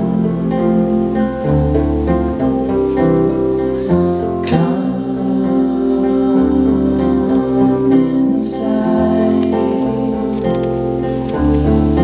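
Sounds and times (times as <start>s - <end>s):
man singing: 0.0s - 1.9s, 4.3s - 12.0s
acoustic guitars strummed: 0.0s - 12.0s.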